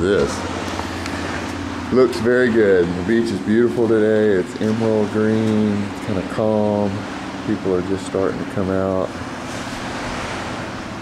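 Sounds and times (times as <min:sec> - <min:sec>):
distant surf: 0:00.0 - 0:11.0
wind: 0:00.0 - 0:11.0.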